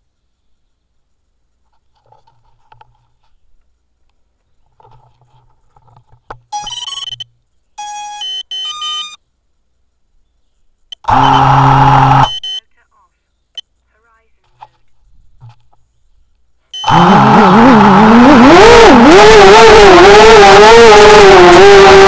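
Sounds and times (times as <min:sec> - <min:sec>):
electronic beeps: 0:06.5 - 0:09.2, 0:10.9 - 0:12.7, 0:16.7 - 0:17.1
loud harsh buzz: 0:11.0 - 0:12.4, 0:16.8 - 0:22.0.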